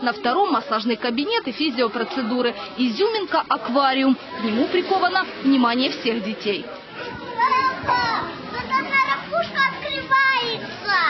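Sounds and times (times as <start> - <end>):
small children talking: 1.6 - 3.4, 4.1 - 5.2, 6.8 - 11.0.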